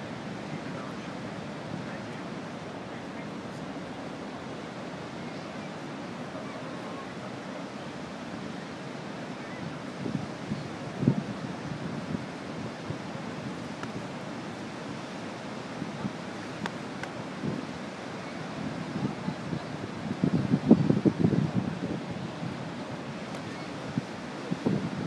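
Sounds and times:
fast river water rushing: 0.0s - 25.0s
wind buffeting microphone: 9.4s - 14.3s, 15.7s - 25.0s.

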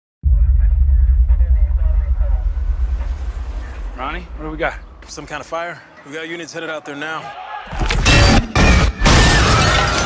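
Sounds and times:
deep loud rumble: 0.2s - 5.0s
people talking indistinctly: 0.3s - 7.9s.

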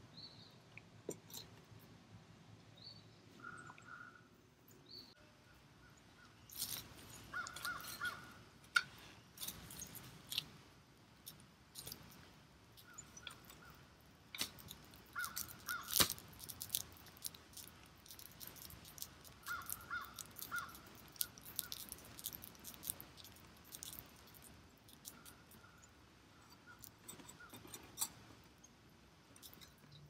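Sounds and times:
crows cawing: 7.3s - 8.4s, 15.1s - 16.0s, 19.4s - 20.8s
sharp clicks and snaps: 14.3s - 25.6s.

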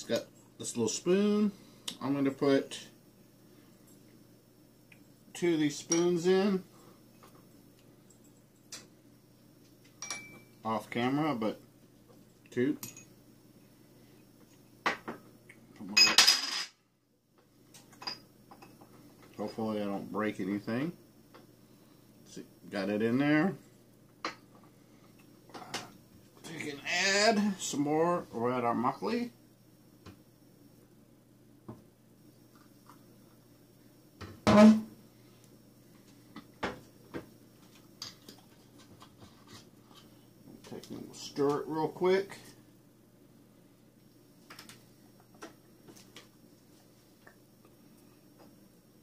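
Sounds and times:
low electrical hum: 0.0s - 49.0s
glassware clinking: 10.0s - 10.5s, 12.8s - 13.1s, 16.0s - 16.7s, 18.0s - 18.8s
spoon clinking on bowl: 10.0s - 10.5s.

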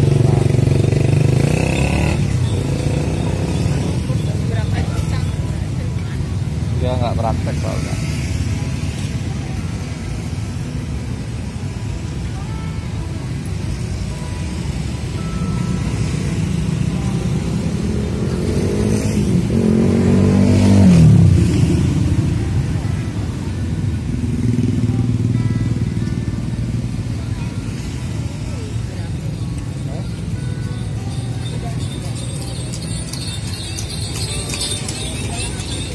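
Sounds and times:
motorcycle passing: 0.0s - 10.7s, 14.4s - 35.9s
street traffic: 0.0s - 35.9s.

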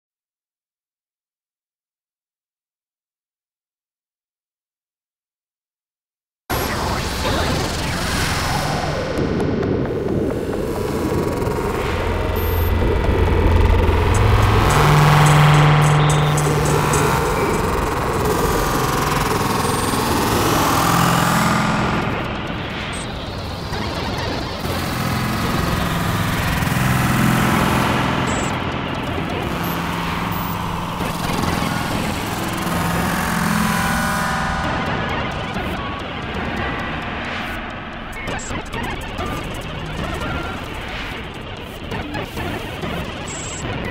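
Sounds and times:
crackling electronic noise: 6.5s - 43.9s
low droning tones: 6.9s - 42.8s.

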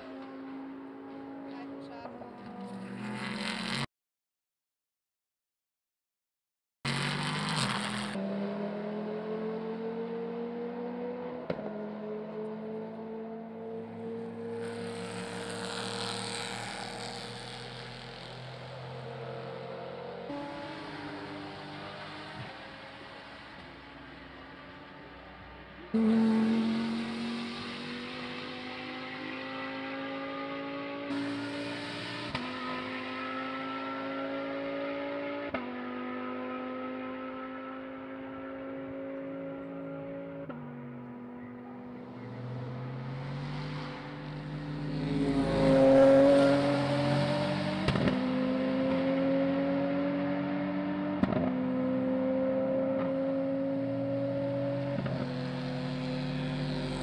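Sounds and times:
racing car engines accelerating: 0.0s - 3.9s, 6.9s - 57.0s.

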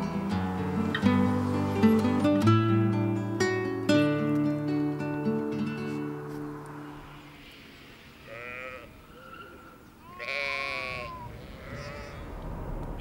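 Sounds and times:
sheep bleating: 8.2s - 12.2s.

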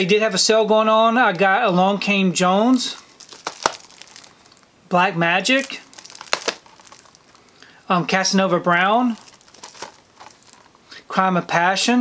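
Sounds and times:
faint handling noise: 2.8s - 4.7s, 5.4s - 10.9s
plastic cases clicking and crinkling: 3.0s - 4.7s, 5.5s - 7.7s, 8.7s - 10.8s.

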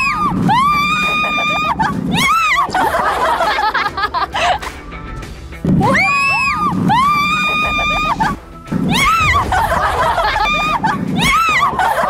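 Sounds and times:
woman screaming: 0.0s - 2.7s, 5.8s - 12.0s.

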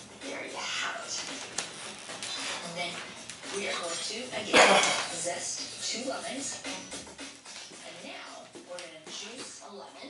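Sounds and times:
television speech: 0.0s - 10.0s.

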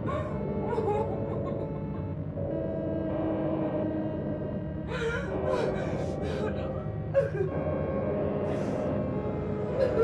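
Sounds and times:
scary music drone: 0.0s - 10.0s.

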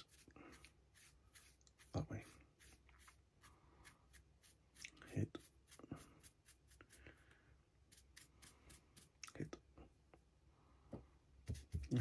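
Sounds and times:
paintbrush dabbing strokes: 0.0s - 9.2s.

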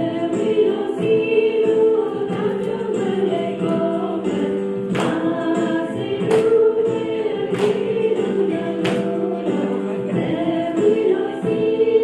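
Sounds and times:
choir singing gospel: 0.0s - 12.0s
sharp clap-like hits: 4.9s - 5.4s, 6.2s - 6.6s, 7.5s - 8.0s, 8.8s - 9.2s.

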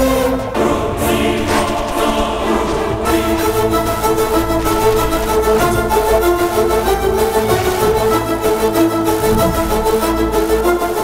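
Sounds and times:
choir-like voices: 0.0s - 11.0s
orchestral chords: 0.0s - 11.0s.

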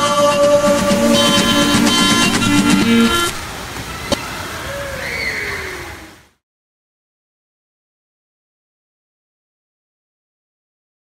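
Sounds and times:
song: 0.1s - 3.5s
splashing water: 0.5s - 5.9s.

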